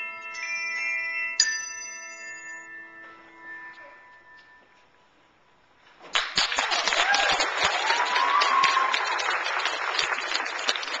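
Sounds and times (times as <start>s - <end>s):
audience clapping: 6.1s - 11.0s.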